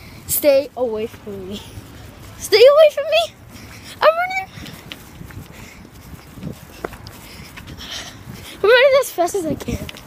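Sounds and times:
running footsteps: 0.7s - 10.0s.

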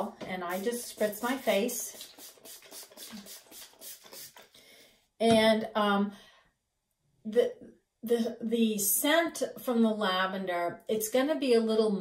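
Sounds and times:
spray bottle hissing sprays: 0.5s - 4.5s.

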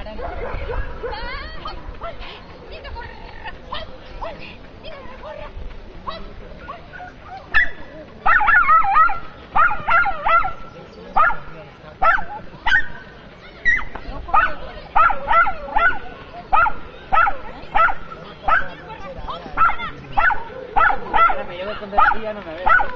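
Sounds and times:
small dog yapping: 6.6s - 11.4s, 12.0s - 12.9s, 13.6s - 16.0s, 16.6s - 18.8s, 19.6s - 21.4s.

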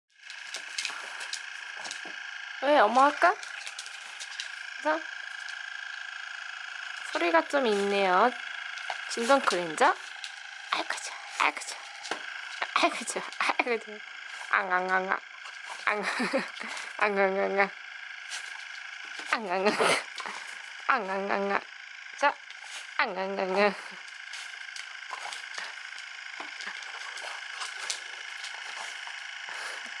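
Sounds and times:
high-pitched buzz of cleansing brush: 0.2s - 30.0s.

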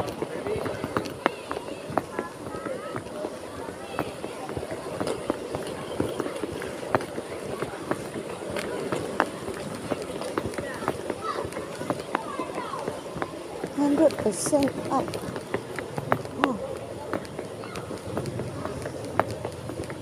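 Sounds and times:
footsteps on paving: 0.0s - 20.0s
unclear background voices: 0.0s - 20.0s.

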